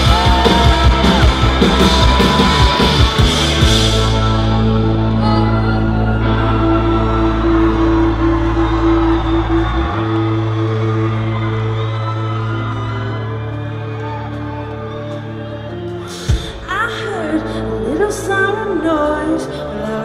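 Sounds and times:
rock band droning chords: 0.0s - 18.6s.

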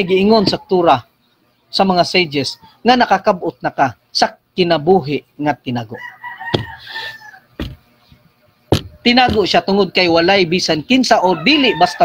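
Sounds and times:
rooster crowing: 0.0s - 1.0s, 5.9s - 7.8s, 11.0s - 12.0s.

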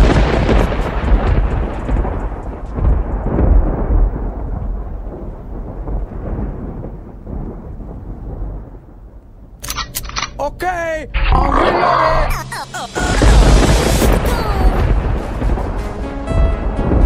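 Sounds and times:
deep thunder-like rumble: 0.0s - 9.6s, 13.1s - 17.0s.

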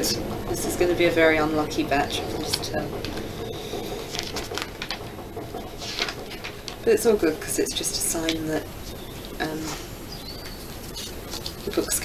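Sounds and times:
paper rustling: 3.9s - 5.0s, 5.7s - 6.7s, 9.6s - 12.0s
stickers crinkling: 10.4s - 12.0s.

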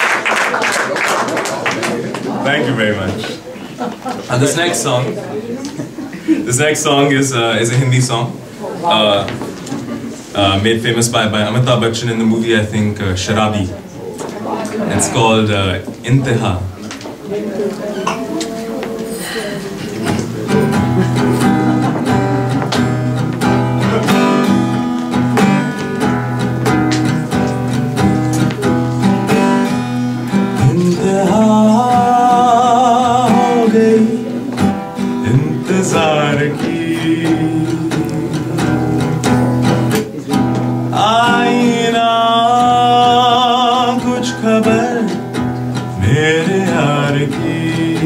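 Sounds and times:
strummed acoustic guitar: 18.0s - 48.0s
man singing into microphone: 30.5s - 39.4s, 40.8s - 48.0s.

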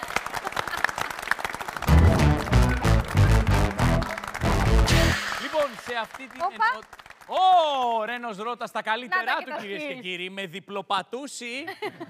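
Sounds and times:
studio applause: 0.0s - 8.2s.

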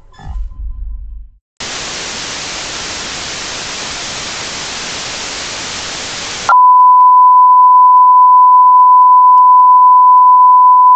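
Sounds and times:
static hiss: 1.6s - 6.5s.

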